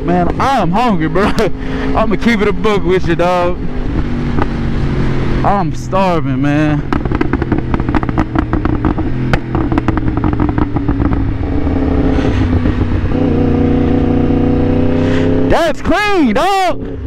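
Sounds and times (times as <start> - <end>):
motorcycle engine running: 0.0 - 17.0.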